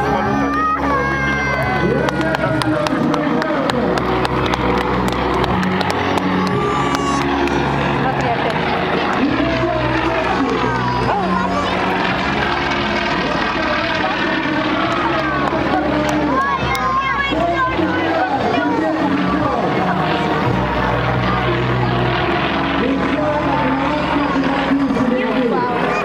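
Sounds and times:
loudspeaker music with bass line: 0.0s - 11.7s
crowd voices: 0.0s - 26.0s
propeller engine running: 0.0s - 26.0s.

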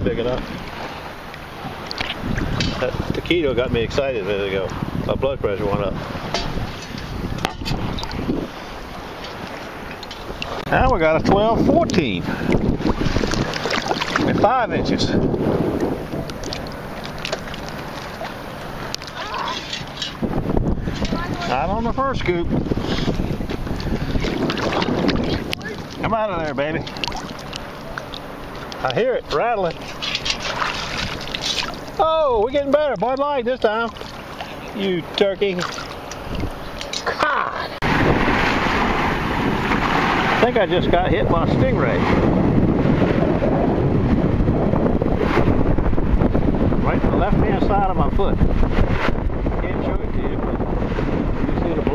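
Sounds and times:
water sloshing: 0.0s - 41.3s
wind buffeting microphone: 0.0s - 51.9s.

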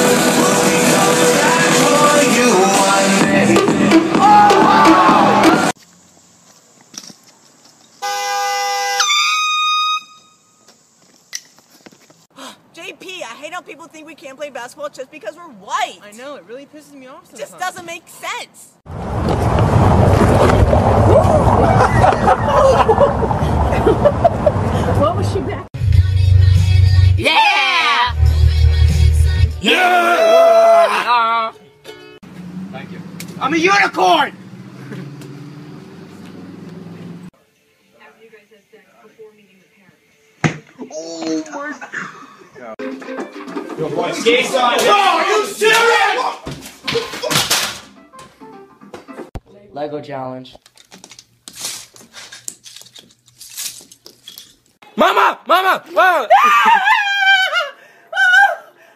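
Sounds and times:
air horn: 8.0s - 10.6s.

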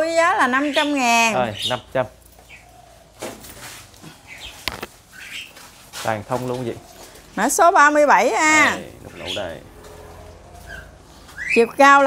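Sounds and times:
bare branches rustling: 0.5s - 12.0s.

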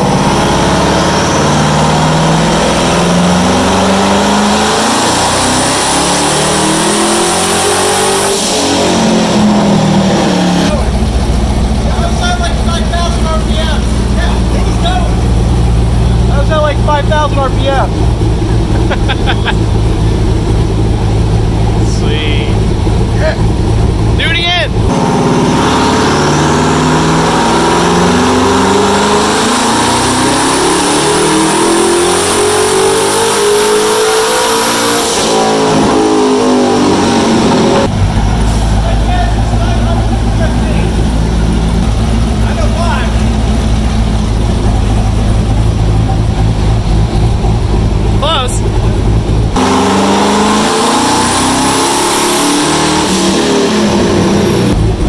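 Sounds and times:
engine revving at full throttle: 0.0s - 55.0s.

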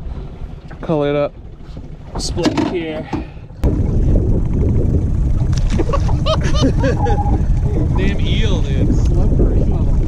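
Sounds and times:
wind buffeting microphone: 3.6s - 10.0s.

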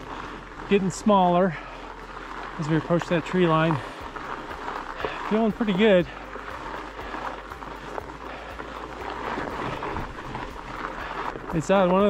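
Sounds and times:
bike tyres crunching on gravel: 0.0s - 12.0s.

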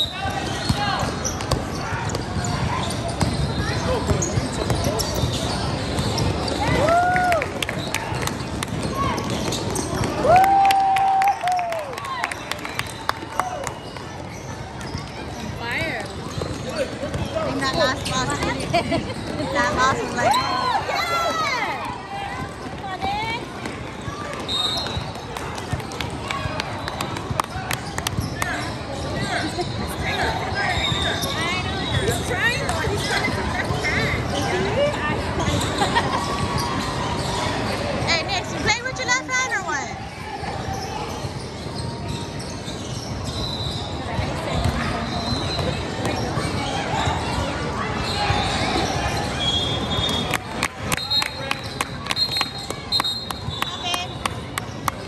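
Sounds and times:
shoe squeaks: 0.0s - 6.8s, 7.8s - 10.2s, 13.8s - 21.2s, 24.0s - 25.3s, 26.7s - 55.0s
basketball bouncing: 0.7s - 6.6s
voices and shouts: 19.6s - 24.9s.

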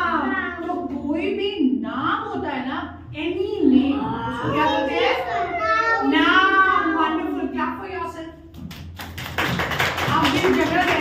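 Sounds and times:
children's voices: 3.9s - 7.5s.

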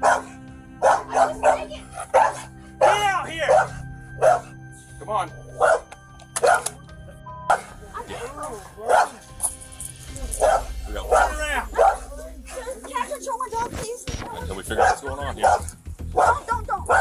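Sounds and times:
dog barking: 0.0s - 4.6s, 5.6s - 6.8s, 7.5s - 7.8s, 8.8s - 9.3s, 10.4s - 12.1s, 14.7s - 17.0s.

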